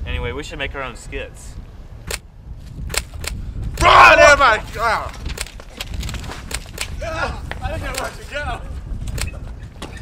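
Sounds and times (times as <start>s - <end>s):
running footsteps on concrete: 4.4s - 10.0s.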